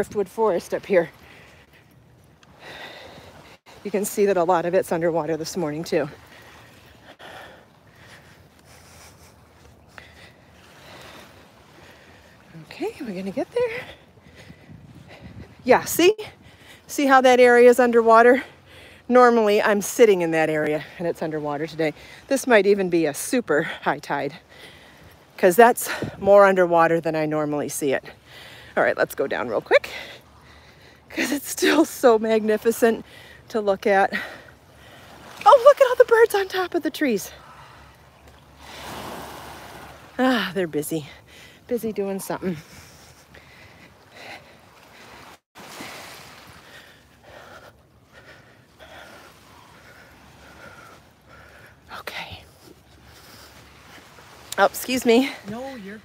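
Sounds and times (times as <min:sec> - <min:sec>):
sea waves washing: 0:00.0 - 0:56.0
wind rumble on microphone: 0:14.2 - 0:16.5
small wave washing onto beach: 0:37.9 - 0:40.4, 0:44.8 - 0:47.0.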